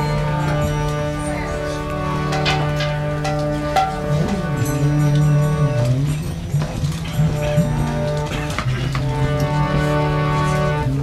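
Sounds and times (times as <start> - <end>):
harmonium reed chords: 0.0 - 11.0.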